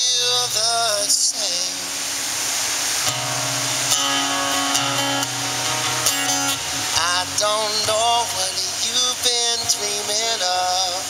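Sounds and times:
acoustic guitar strumming: 0:00.0 - 0:11.0
person singing: 0:03.9 - 0:11.0.

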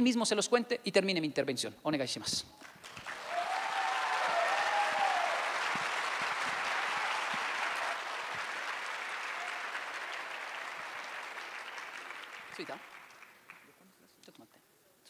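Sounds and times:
audience applause: 0:02.7 - 0:13.7.

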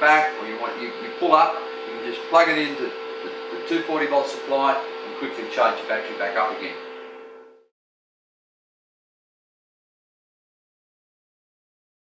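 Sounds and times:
inverter hum with held tones: 0:00.0 - 0:07.7.

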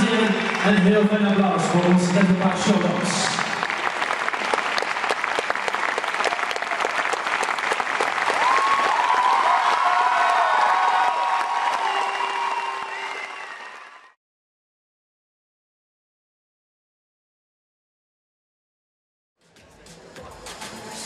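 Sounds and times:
audience applauding: 0:00.0 - 0:14.2
cheering voices: 0:05.6 - 0:14.2.

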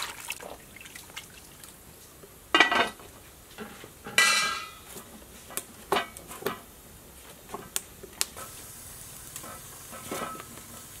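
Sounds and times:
wood fire hissing and crackling: 0:00.0 - 0:11.0.

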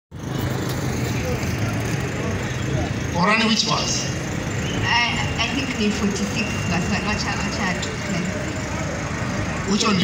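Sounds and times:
murmur of outdoor crowd: 0:00.1 - 0:10.0.

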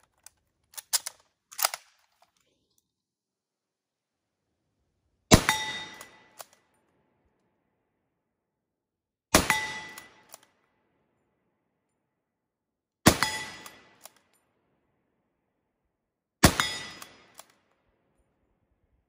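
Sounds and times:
rifle shots: 0:16.4 - 0:17.5.

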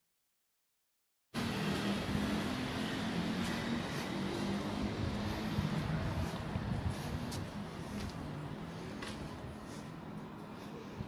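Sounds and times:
street noise low rumble: 0:01.4 - 0:11.0.

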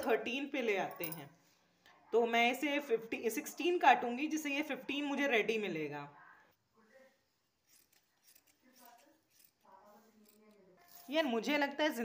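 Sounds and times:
fabric shears snipping cloth: 0:07.4 - 0:11.4.

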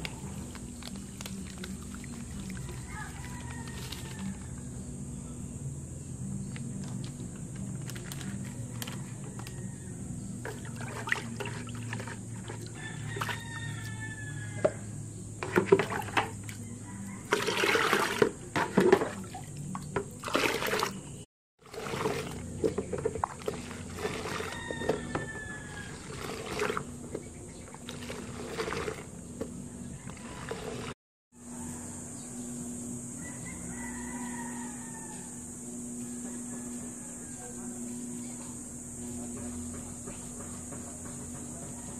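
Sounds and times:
water splashing into bucket: 0:00.0 - 0:04.3, 0:10.4 - 0:14.0, 0:15.4 - 0:16.6, 0:17.2 - 0:31.0
rooster crowing: 0:02.5 - 0:04.9, 0:08.6 - 0:10.6, 0:12.4 - 0:15.0, 0:16.5 - 0:18.1, 0:24.1 - 0:26.3, 0:31.4 - 0:38.4, 0:40.6 - 0:41.9.

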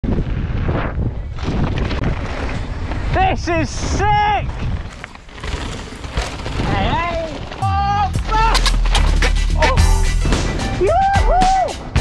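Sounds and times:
wind buffeting microphone: 0:00.0 - 0:05.4
tyres rumbling on dirt trail: 0:00.0 - 0:10.6.

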